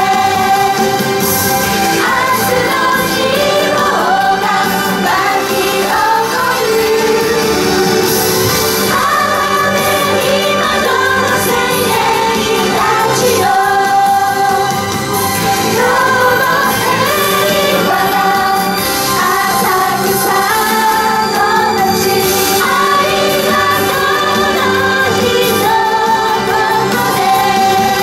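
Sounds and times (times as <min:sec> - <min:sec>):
girls singing together: 0:00.0 - 0:28.0
instrumental accompaniment: 0:00.0 - 0:28.0.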